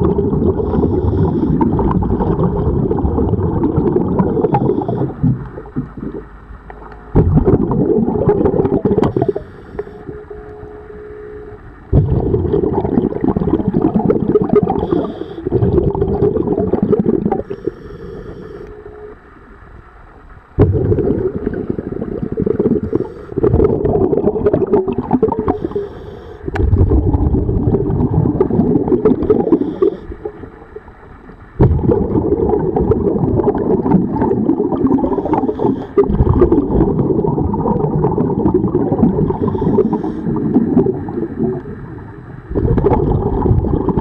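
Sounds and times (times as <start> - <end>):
exhaled bubbles rushing: 0.0 - 9.5, 11.9 - 17.7, 20.6 - 25.8, 26.5 - 31.0, 31.6 - 44.0
regulator inhalation hiss: 0.6 - 1.6, 9.1 - 10.0, 14.8 - 15.5, 17.4 - 18.7, 22.8 - 23.4, 25.4 - 26.5, 29.4 - 30.2, 35.0 - 36.0, 39.3 - 40.4.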